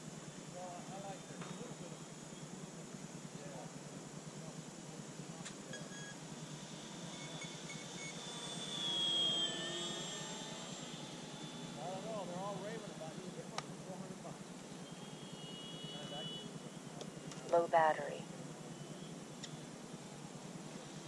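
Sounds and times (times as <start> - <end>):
model airplane motor whine: 4.2 - 17.0.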